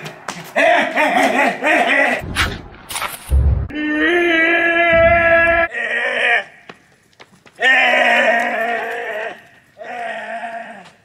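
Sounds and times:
long bleating cries: 7.6 - 11.0.

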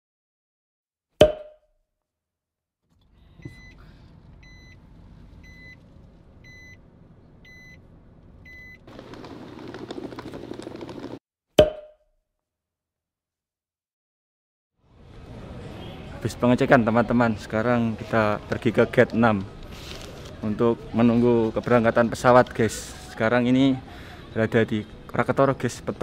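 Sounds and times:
car warning beeps: 3.4 - 3.8, 4.4 - 4.8, 5.4 - 5.8, 6.4 - 6.8, 7.4 - 7.8, 8.4 - 8.8.

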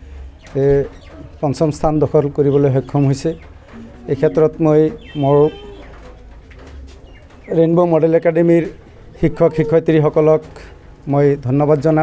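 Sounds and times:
man speaking: 0.5 - 5.8, 7.5 - 12.0.

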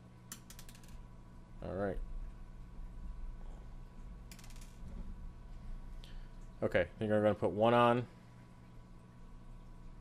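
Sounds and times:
faint steady hum: 0.0 - 10.0
small metal washers clicking: 0.3 - 1.0, 4.3 - 4.8.

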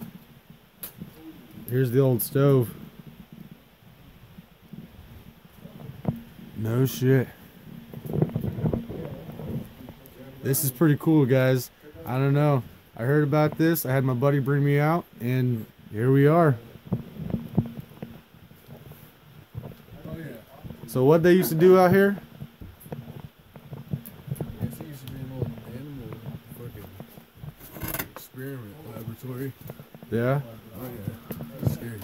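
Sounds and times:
wind buffeting microphone: 2.8 - 10.4.

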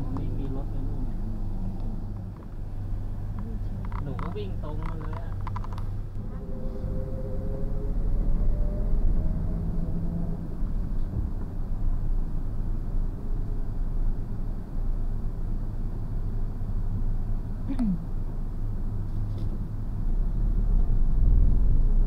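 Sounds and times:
van engine rumble: 0.0 - 22.0.

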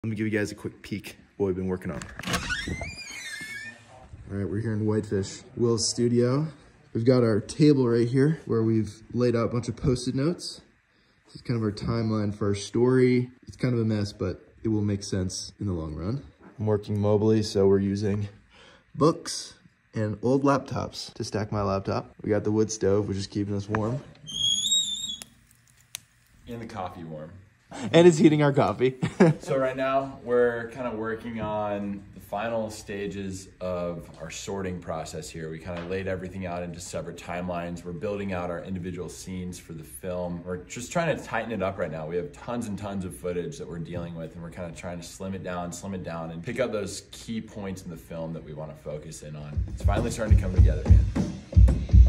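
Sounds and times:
door hinge squealing: 2.1 - 4.0, 24.2 - 25.4.

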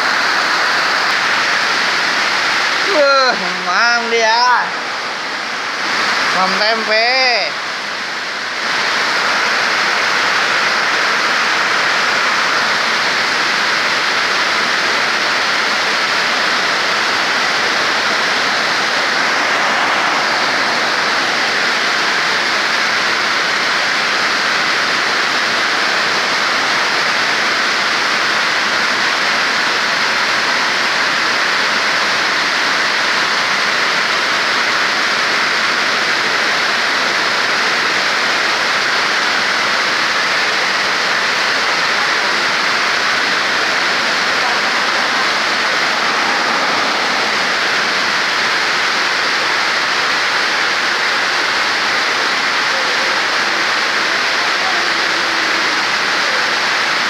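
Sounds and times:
heavy rain falling: 0.0 - 57.0.

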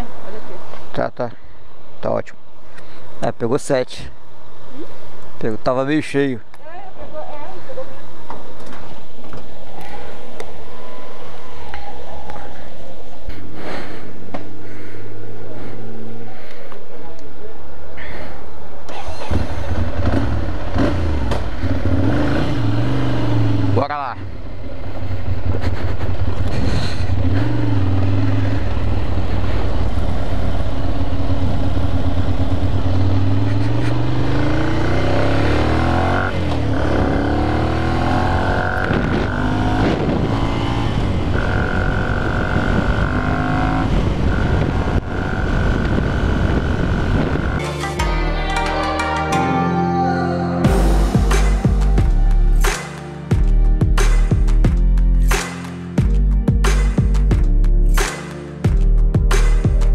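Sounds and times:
motorcycle engine accelerating: 19.0 - 47.6.

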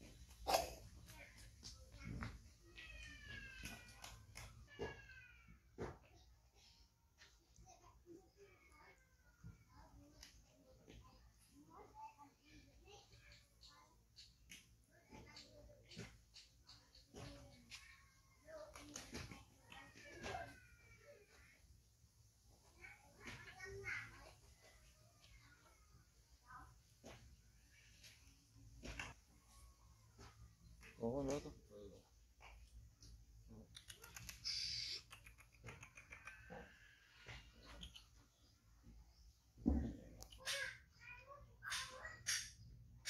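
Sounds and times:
short clicks: 33.7 - 36.4.

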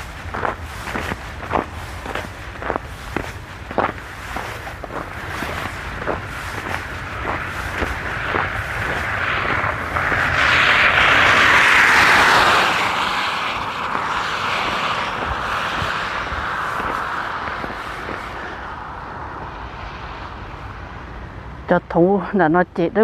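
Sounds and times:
tyre hiss on wet road: 0.0 - 21.0.

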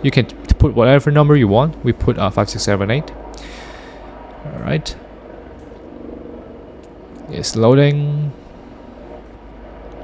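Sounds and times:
low room hum and hiss: 0.0 - 10.0.

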